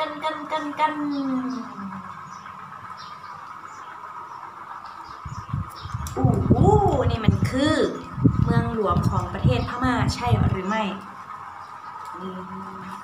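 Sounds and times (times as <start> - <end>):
faint steady hum: 0.0 - 13.0
low rumble: 5.3 - 10.9.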